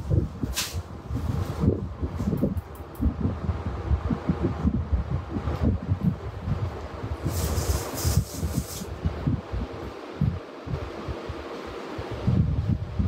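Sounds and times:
fabric rustling and rubbing: 7.2 - 9.0.

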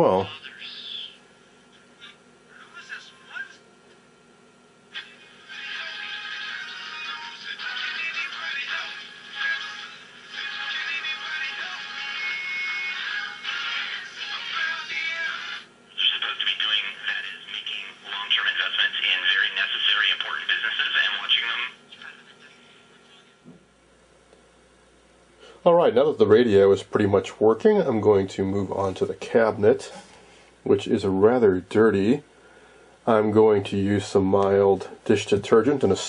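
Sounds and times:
radio speech and music: 5.0 - 12.3, 12.9 - 22.4.

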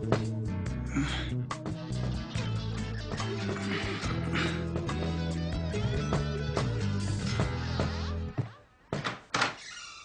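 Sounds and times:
background music: 0.0 - 9.0.

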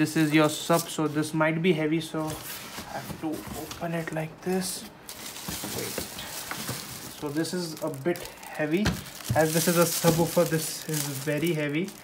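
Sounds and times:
cardboard rustling and scraping: 2.2 - 8.1, 8.8 - 11.6.

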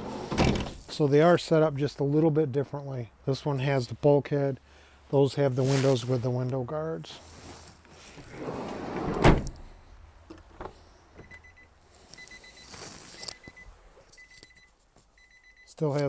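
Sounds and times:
van door slamming shut: 0.2 - 0.8, 8.8 - 9.6.

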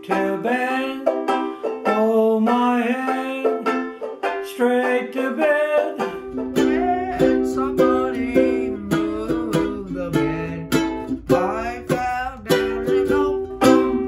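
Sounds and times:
boy singing: 0.0 - 1.2, 1.8 - 3.7, 4.4 - 14.0
banjo ukulele strumming: 0.0 - 14.0
baritone ukulele strumming: 0.0 - 14.0.

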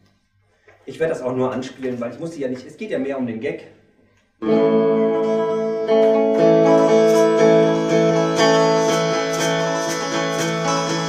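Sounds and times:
electric guitar strumming chords: 4.4 - 11.0.

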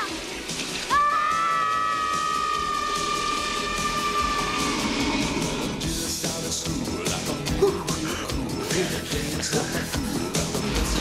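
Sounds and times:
children screaming: 0.9 - 5.6.

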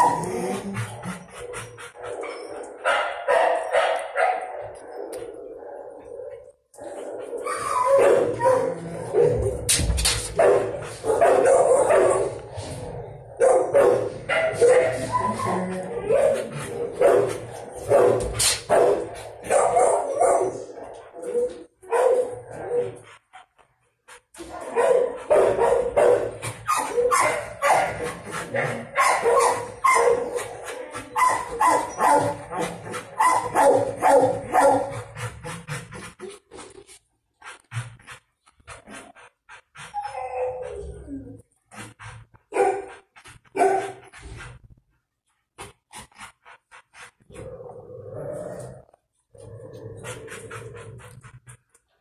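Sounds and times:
dogs barking: 0.0 - 9.7, 10.3 - 12.4, 13.4 - 23.0, 24.6 - 30.4, 31.1 - 35.1, 42.5 - 44.0.

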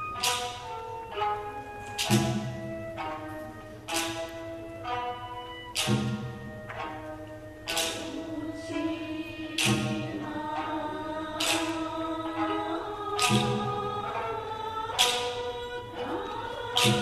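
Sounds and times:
sharp percussive strike: 0.0 - 5.0, 5.7 - 8.3, 9.6 - 10.7, 13.2 - 14.3.

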